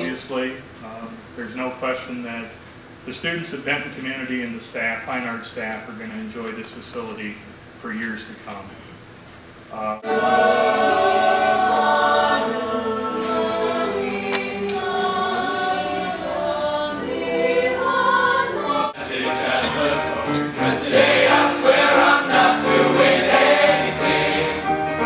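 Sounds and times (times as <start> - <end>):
boys' choir singing: 10.0 - 25.0
mixed choir singing held chords: 10.0 - 25.0.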